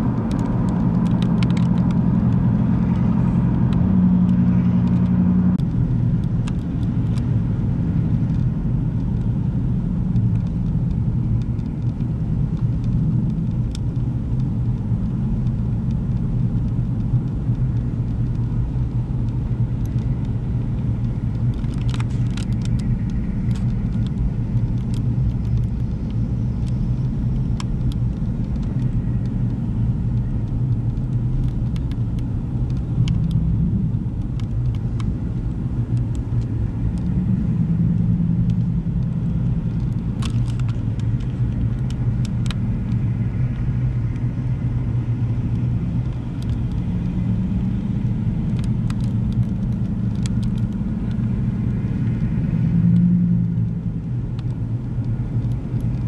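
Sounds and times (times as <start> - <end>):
heavy vehicle engines rumbling: 0.0 - 56.0.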